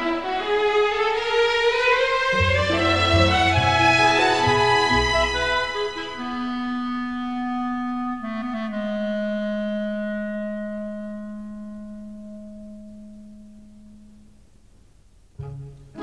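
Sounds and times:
solo clarinet: 2.3 - 14.2, 15.4 - 16.0.

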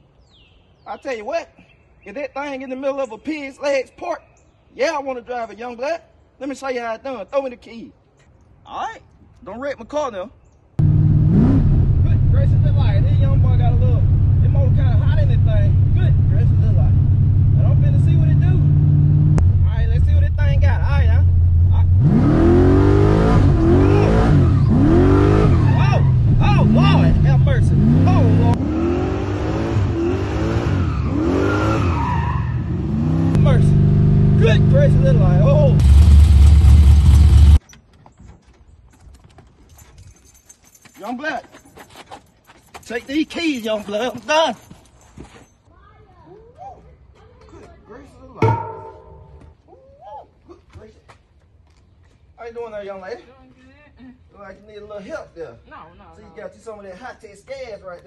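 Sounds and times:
car engine revving inside cabin: 10.8 - 20.6, 21.2 - 31.8, 32.7 - 37.6.

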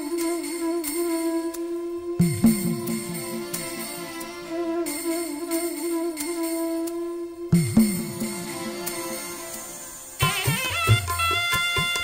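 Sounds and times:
person humming long note: 0.0 - 9.3
soft musical accompaniment: 0.0 - 12.0.

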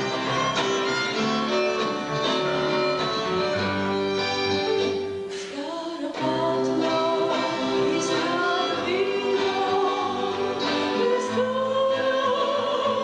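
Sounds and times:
mixed choir singing: 6.0 - 13.0.

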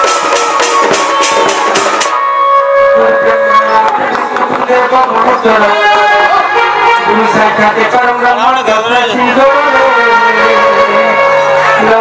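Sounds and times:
folk music with wavering melody: 0.0 - 7.3.

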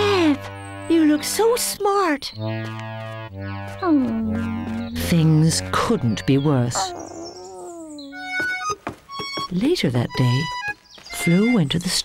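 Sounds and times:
cartoon dog whimpering: 6.7 - 8.6.

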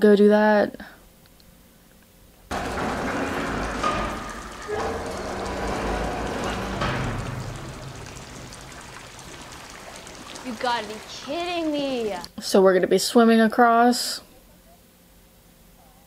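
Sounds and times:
low rumble: 2.5 - 12.0
falling water: 2.5 - 12.3.

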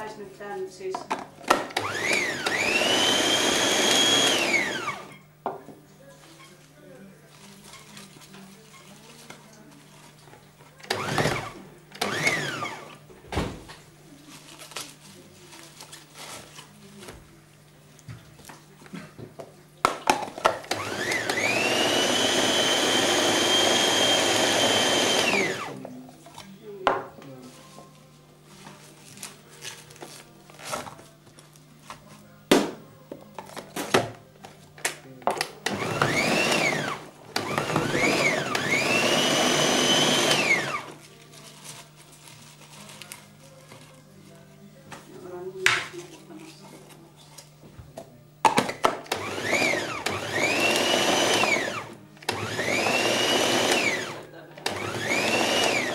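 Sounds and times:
electric blender whining: 1.5 - 5.2, 10.9 - 13.0, 20.7 - 25.8, 35.6 - 41.0, 49.1 - 55.9
blender jar knocking and clattering: 37.4 - 39.5.

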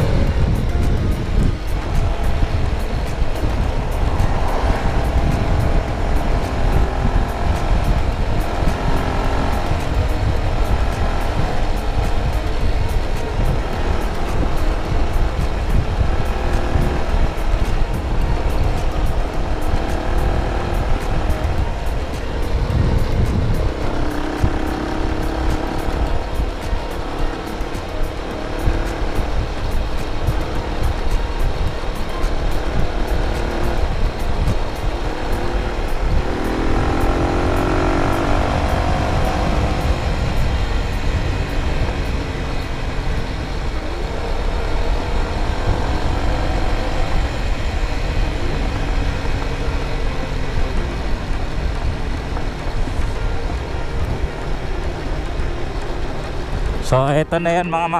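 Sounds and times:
motorcycle engine running: 0.0 - 57.9
wind rush on microphone: 0.0 - 57.9.

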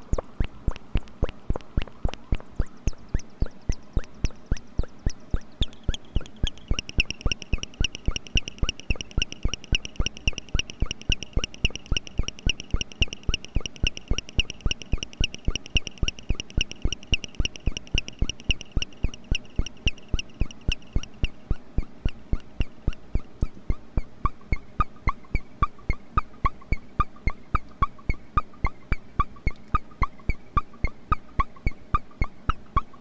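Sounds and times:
synthesizer chirping blips: 0.0 - 23.3.

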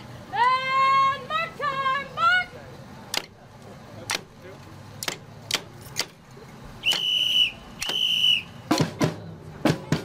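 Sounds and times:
whistle blasts: 6.8 - 8.8.

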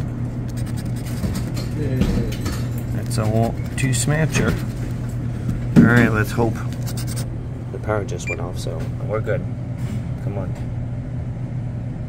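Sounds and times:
steady low hum: 0.0 - 12.0
lottery ticket being scratched: 0.4 - 1.7, 6.7 - 7.3.

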